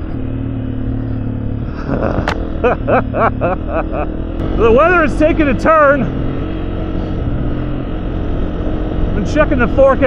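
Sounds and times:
dirt bike engine running: 0.0 - 10.0
person laughing: 1.6 - 4.4.

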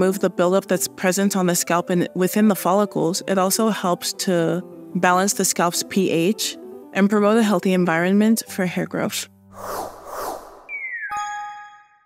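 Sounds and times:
short whoosh: 9.5 - 10.9
falling tone: 9.6 - 11.4
notification ding: 10.7 - 11.8.

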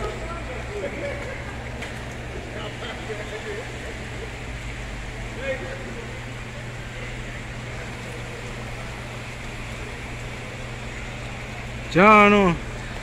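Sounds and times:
river water rushing: 0.0 - 13.0
steady low hum: 0.0 - 13.0.

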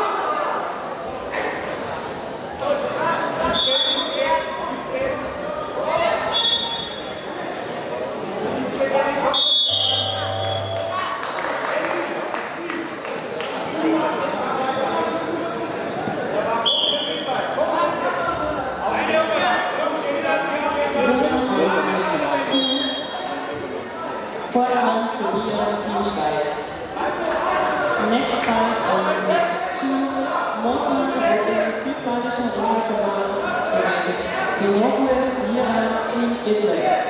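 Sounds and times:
people talking and calling out: 0.0 - 37.0
high whistle tone: 9.3 - 11.1
low electronic buzzer: 9.7 - 11.2.

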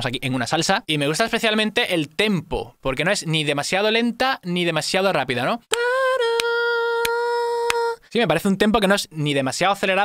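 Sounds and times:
man humming a long note: 5.7 - 8.0.

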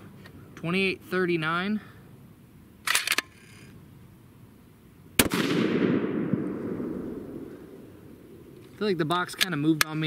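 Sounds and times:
rifle shot: 5.2 - 7.8
rolling echo: 5.2 - 8.6.

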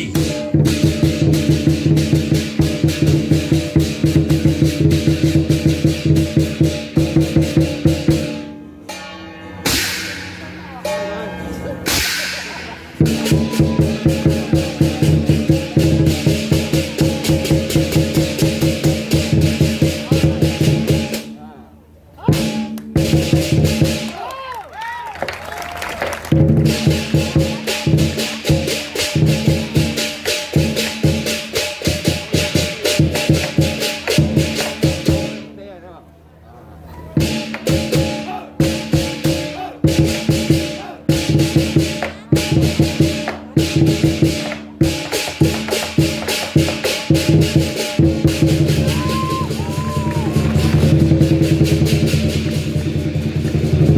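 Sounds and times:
big drum beating fast rhythm: 0.0 - 8.5, 11.8 - 21.4, 22.2 - 24.1, 26.3 - 35.6, 37.2 - 53.9
gong: 8.3 - 16.0.

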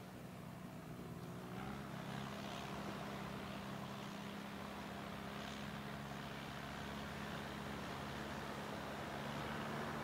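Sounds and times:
motor engine droning: 0.0 - 10.0
wind: 0.0 - 10.0.

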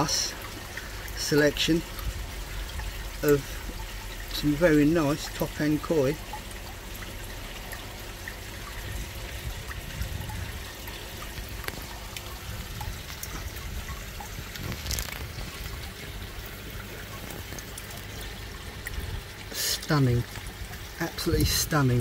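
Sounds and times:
water pouring into tanks: 0.0 - 22.0.

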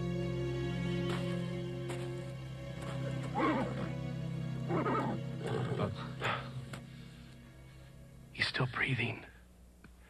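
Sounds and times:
soft background music: 0.0 - 9.4.

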